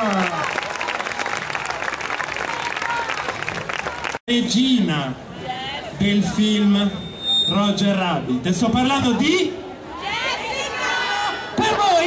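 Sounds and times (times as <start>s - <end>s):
crowd applauding: 0.0s - 4.2s.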